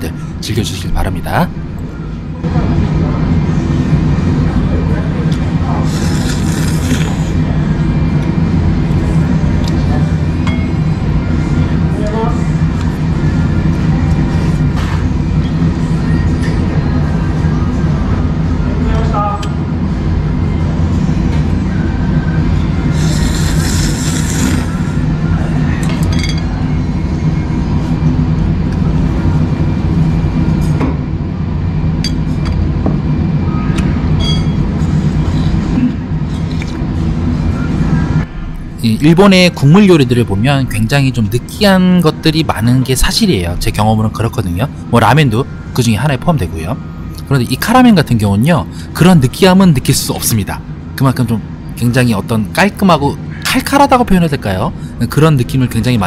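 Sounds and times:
low hum: 0.0s - 56.0s
steady low rumble: 0.0s - 56.0s
noodles slurped: 5.9s - 7.4s, 22.9s - 24.8s
utensils clinking against bowl: 25.8s - 26.5s.

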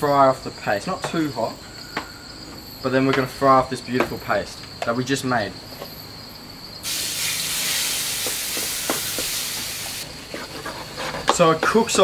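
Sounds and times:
paste sizzling in hot oil: 6.8s - 10.1s.

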